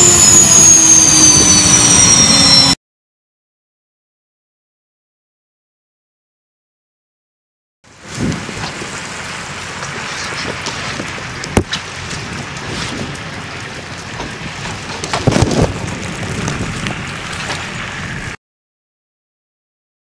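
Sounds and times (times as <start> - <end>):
low rumbles: 7.9 - 18.4
rain hiss: 7.9 - 18.4.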